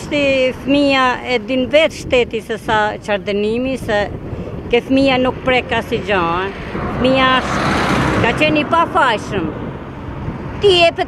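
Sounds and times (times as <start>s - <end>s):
vehicle passing: 0.0s - 11.0s.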